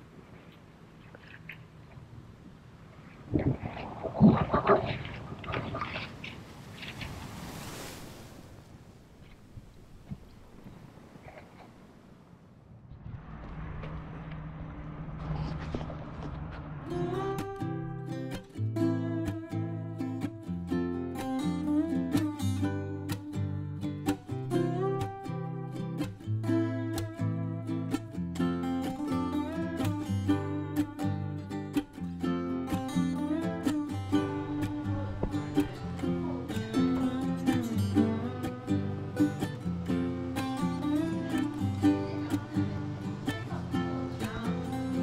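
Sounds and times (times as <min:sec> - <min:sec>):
acoustic guitar music: 0:16.4 - 0:45.0.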